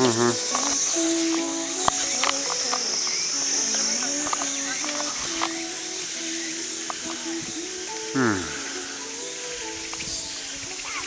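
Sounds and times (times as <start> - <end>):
insects buzzing: 0.0 - 11.0
music of slow held notes: 0.0 - 11.0.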